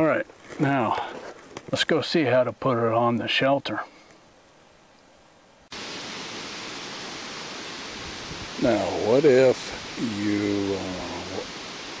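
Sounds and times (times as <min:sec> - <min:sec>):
man talking: 0:00.0 - 0:04.0, 0:08.6 - 0:11.5
rushing hiss of outdoor ambience: 0:00.0 - 0:12.0.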